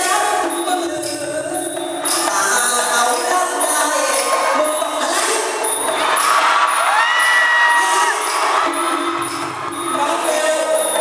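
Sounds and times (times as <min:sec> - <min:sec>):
stage music with metallic beat: 0:00.0 - 0:11.0
audience cheering and shouting: 0:04.2 - 0:11.0.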